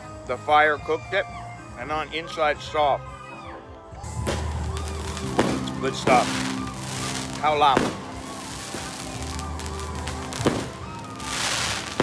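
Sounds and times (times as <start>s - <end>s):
music: 0.0s - 12.0s
fireworks banging: 4.2s - 12.0s.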